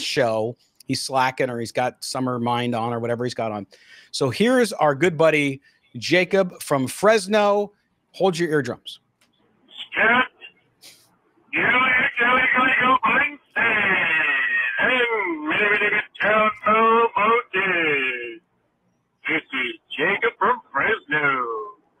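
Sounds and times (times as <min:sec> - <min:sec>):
man's voice over telephone line: 0:09.7 - 0:10.5, 0:11.5 - 0:18.4, 0:19.2 - 0:21.8.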